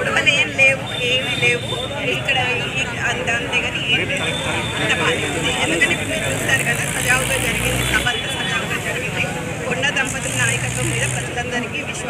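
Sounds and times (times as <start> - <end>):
woman speaking: 0.0 - 12.0.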